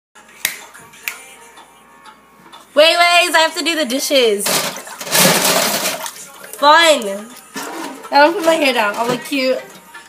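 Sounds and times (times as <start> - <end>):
faint music: 0.2 - 10.0
finger snaps: 0.4 - 1.3.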